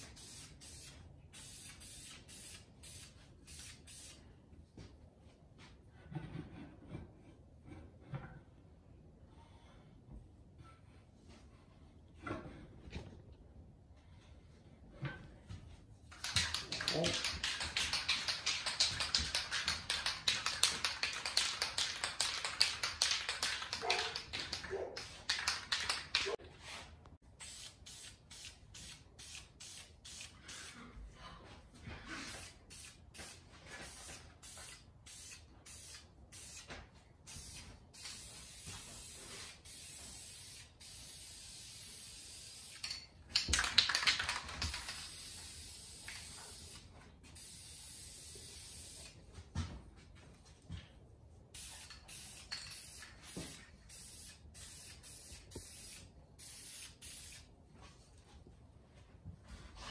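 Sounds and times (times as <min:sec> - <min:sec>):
aerosol spray can hissing: 0:00.0 - 0:04.2, 0:27.4 - 0:30.6, 0:32.4 - 0:36.7, 0:37.3 - 0:42.8, 0:51.6 - 0:57.5.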